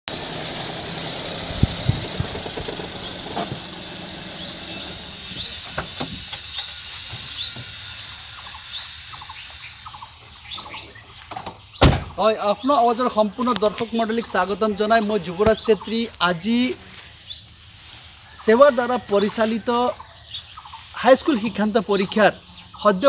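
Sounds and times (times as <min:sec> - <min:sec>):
steady hiss: 0:00.1 - 0:23.0.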